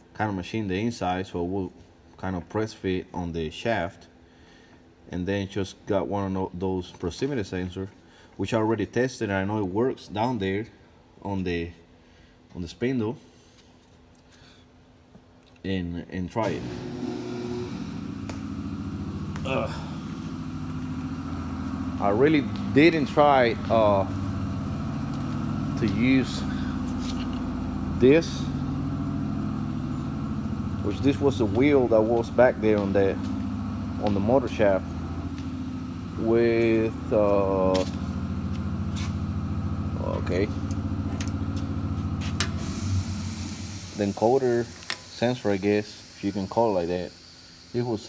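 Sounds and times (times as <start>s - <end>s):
mill spindle motor humming: 16.4s - 48.0s.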